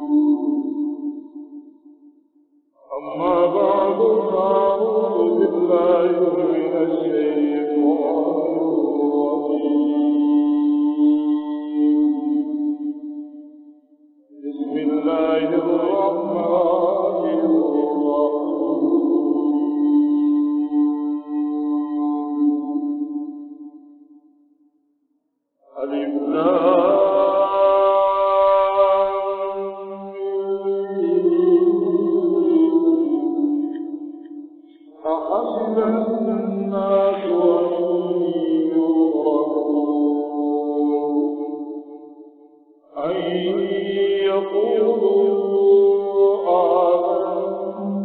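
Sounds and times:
man chanting melodically: 0:02.8 - 0:12.4, 0:25.7 - 0:33.7, 0:35.0 - 0:41.5, 0:43.0 - 0:47.9.

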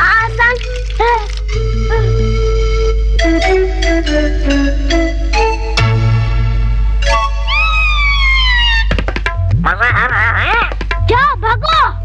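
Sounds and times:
background music: 0:00.0 - 0:12.0
cartoon falling whistle: 0:07.5 - 0:08.9.

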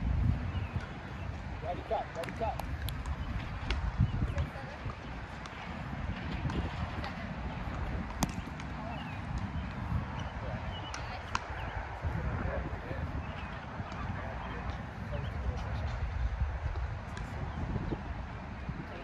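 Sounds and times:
faint distant voices: 0:01.6 - 0:19.0.

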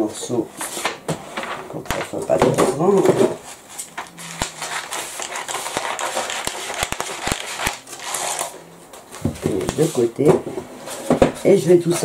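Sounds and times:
tracing paper crackling: 0:01.9 - 0:10.1.

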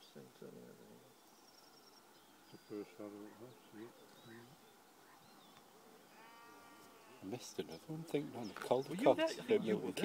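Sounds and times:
distant animal call: 0:01.3 - 0:07.9.

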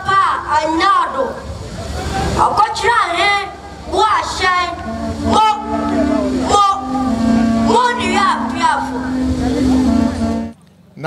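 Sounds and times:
faint voices: 0:00.0 - 0:11.0
steady low hum: 0:03.5 - 0:10.6.

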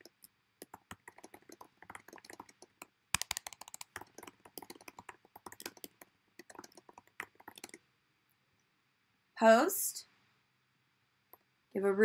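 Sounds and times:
typing on computer keyboard: 0:00.0 - 0:07.8.

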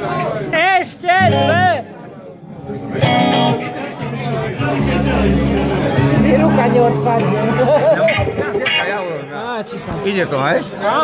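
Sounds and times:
strummed guitar chord: 0:03.0 - 0:09.2
low bass notes: 0:04.6 - 0:09.0.

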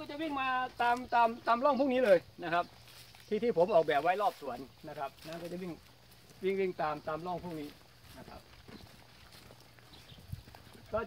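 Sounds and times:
man speaking: 0:00.0 - 0:02.7, 0:03.3 - 0:05.8, 0:06.4 - 0:08.5, 0:10.8 - 0:11.0
footsteps on dry leaves: 0:00.0 - 0:11.0.

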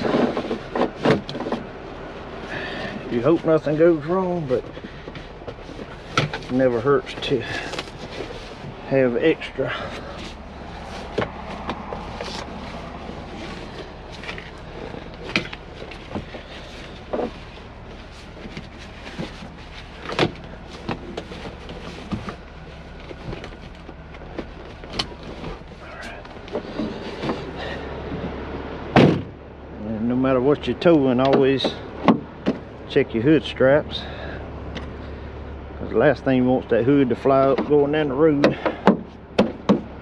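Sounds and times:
clicks and knocks in cab: 0:00.0 - 0:01.7, 0:04.6 - 0:08.2, 0:13.4 - 0:17.4, 0:18.4 - 0:22.4, 0:23.0 - 0:29.4, 0:31.2 - 0:32.7, 0:38.4 - 0:40.0
truck engine idling: 0:00.0 - 0:40.0
loud thump: 0:28.9 - 0:29.4.

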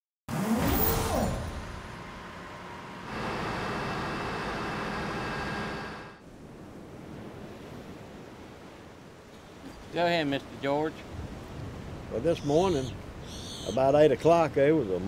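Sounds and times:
logo sound with engine rev: 0:00.3 - 0:06.2.

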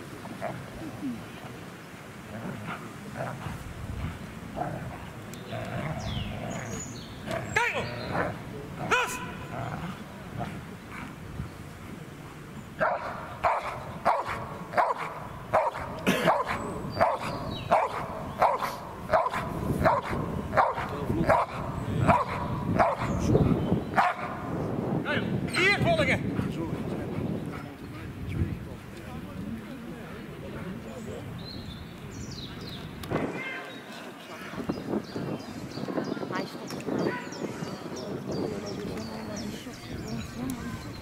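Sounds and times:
dog barking: 0:08.9 - 0:09.4, 0:12.8 - 0:23.2, 0:24.0 - 0:24.4.

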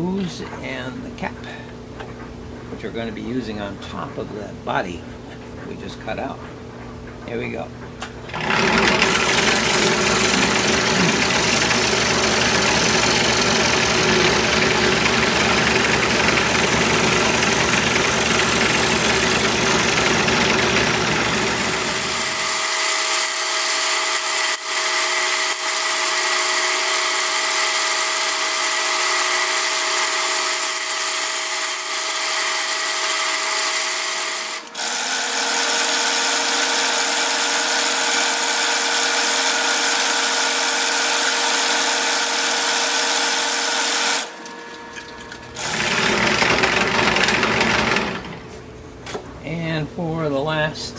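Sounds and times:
scroll saw cutting wood: 0:08.3 - 0:48.6.

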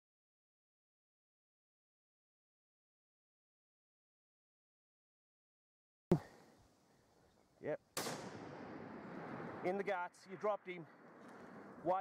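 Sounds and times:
rifle shot echoing: 0:08.0 - 0:11.8.

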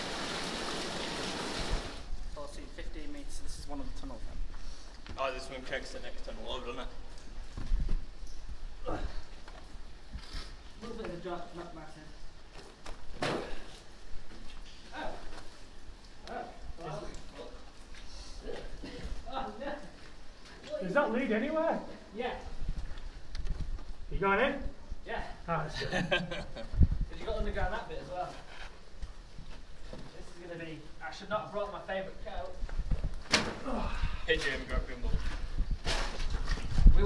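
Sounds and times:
water rushing in stone tunnel: 0:00.0 - 0:02.1.

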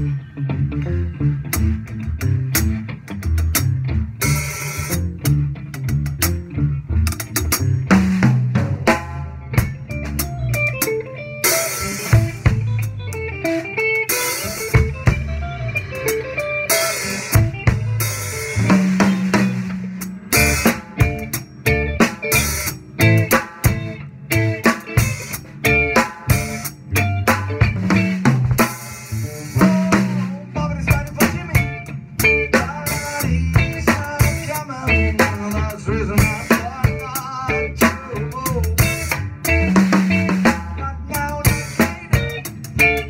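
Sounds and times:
bass guitar: 0:00.0 - 0:43.0
drum kit: 0:00.0 - 0:43.0
electric guitar: 0:00.0 - 0:43.0.

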